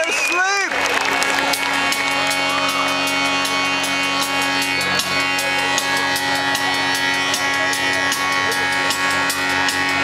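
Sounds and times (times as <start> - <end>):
live rock band playing: 0.9 - 10.0.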